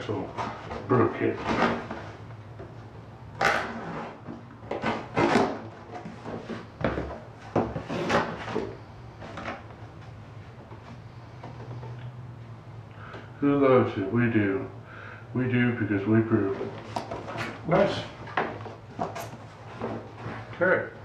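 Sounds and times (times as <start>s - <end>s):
cardboard box scraping and rustling: 3.7s - 6.8s.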